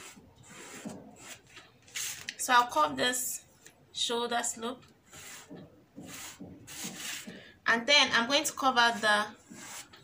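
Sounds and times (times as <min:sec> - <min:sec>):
chalk rubbing on fabric: 0:00.0 - 0:01.4, 0:05.1 - 0:07.3, 0:08.6 - 0:10.0.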